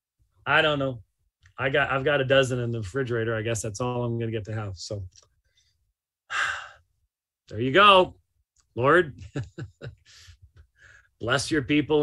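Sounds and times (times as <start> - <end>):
man sighing: 6.3 - 6.8.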